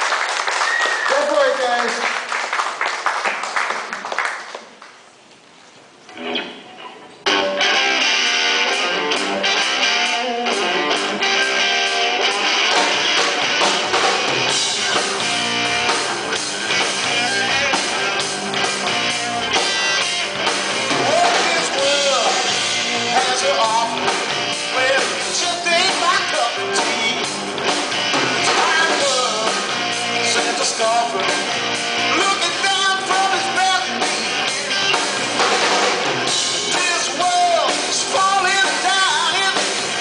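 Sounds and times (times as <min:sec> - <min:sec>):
audience clapping: 0:00.0 - 0:05.2
blues-rock band playing: 0:06.1 - 0:40.0.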